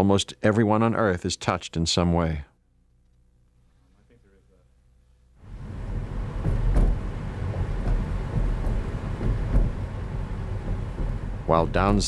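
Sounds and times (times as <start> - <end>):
car road noise rumble: 5.4 - 12.0
sharp knocks and bumps: 5.6 - 12.0.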